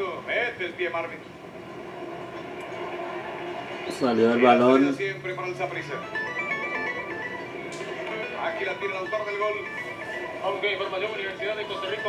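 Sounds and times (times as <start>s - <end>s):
stadium crowd noise: 1.2s - 5.2s
stepped high electronic jingle: 5.5s - 12.0s.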